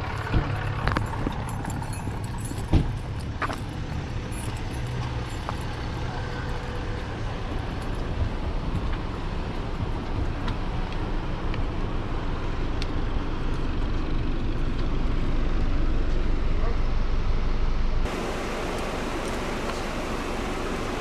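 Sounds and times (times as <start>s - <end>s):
idling vehicles rumbling: 0.0s - 21.0s.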